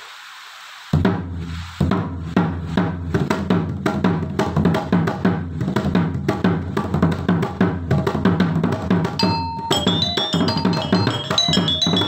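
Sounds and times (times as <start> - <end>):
drum: 1.0 - 12.0
metallophones struck with mallets: 9.2 - 12.0.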